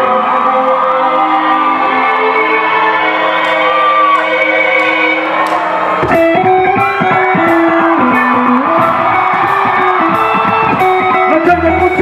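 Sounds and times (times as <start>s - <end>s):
electric guitar lines: 5.0s - 12.0s
drum kit: 5.5s - 12.0s
bass guitar: 6.0s - 12.0s.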